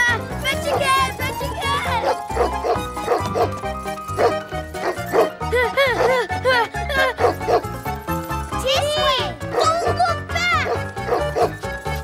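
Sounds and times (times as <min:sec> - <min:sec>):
cartoon dog barking: 0:09.5 - 0:11.5.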